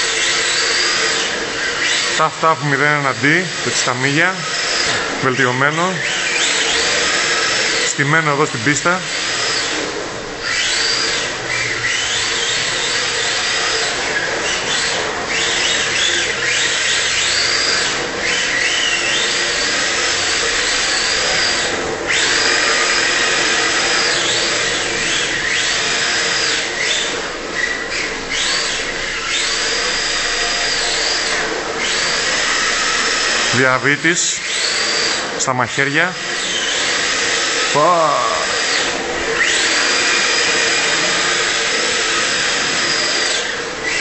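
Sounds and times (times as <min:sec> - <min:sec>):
toy car electric motor whining: 0:00.0 - 0:44.0.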